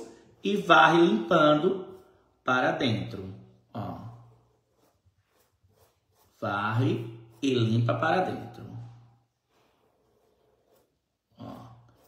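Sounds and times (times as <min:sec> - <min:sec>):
paintbrush strokes on fabric: 0:00.2 - 0:12.0.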